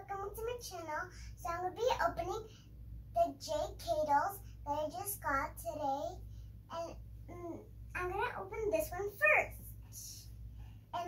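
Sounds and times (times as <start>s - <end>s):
girl speaking: 0.0s - 11.0s.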